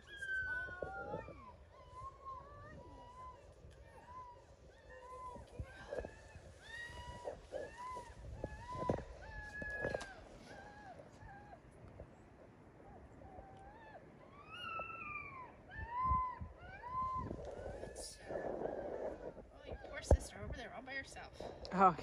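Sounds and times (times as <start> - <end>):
puppy whining: 0.0 - 12.2, 12.8 - 20.1.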